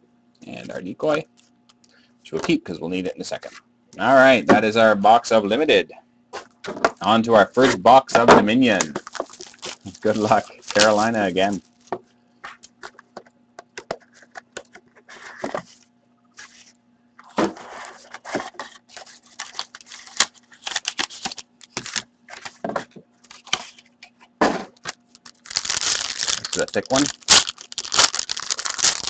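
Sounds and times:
cardboard scraping and crackling: 0:08.8 - 0:11.9, 0:16.4 - 0:24.2, 0:25.2 - 0:29.0.

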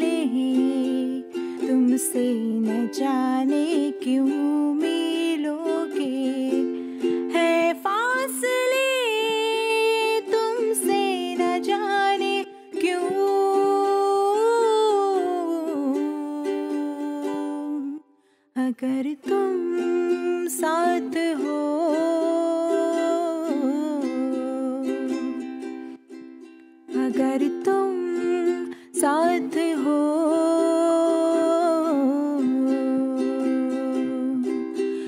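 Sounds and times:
ukulele strumming: 0:00.0 - 0:18.0, 0:18.8 - 0:35.0.

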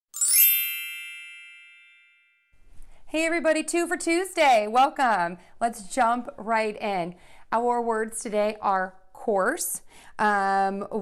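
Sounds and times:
bell-like chime chord: 0:00.1 - 0:02.6.

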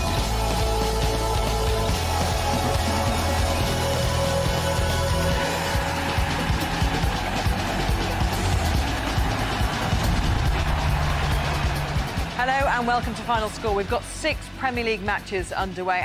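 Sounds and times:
theme music with heavy bass: 0:00.0 - 0:16.0.

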